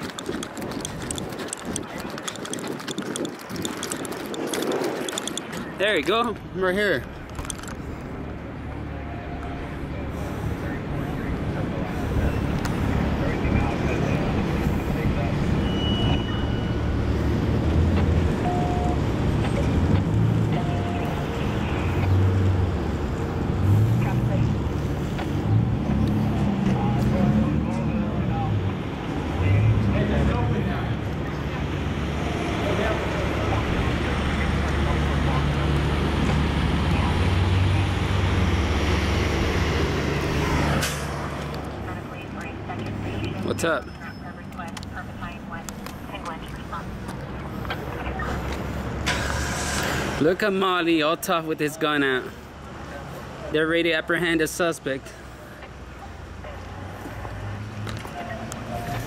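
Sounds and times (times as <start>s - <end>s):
vehicle traffic rumble: 0.0s - 59.0s.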